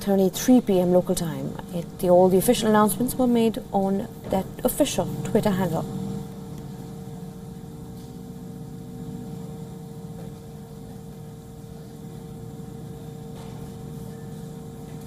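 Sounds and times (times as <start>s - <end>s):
faint constant hum tone: 0.0s - 15.0s
vehicles idling: 4.2s - 15.0s.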